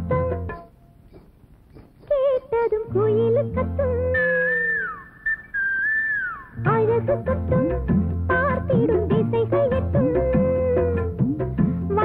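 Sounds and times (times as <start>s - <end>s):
whistled melody: 4.0s - 7.2s.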